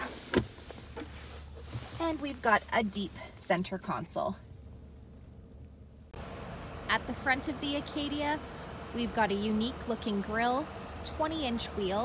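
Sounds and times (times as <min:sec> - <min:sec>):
low vehicle hum: 0:00.0 - 0:12.0
motor vehicle noise outdoors: 0:00.0 - 0:12.0.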